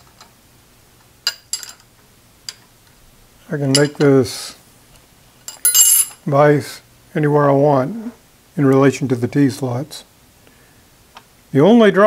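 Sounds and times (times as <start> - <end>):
steel parts clinking on metal: 1.2 - 1.9, 3.7 - 4.1, 5.4 - 6.2.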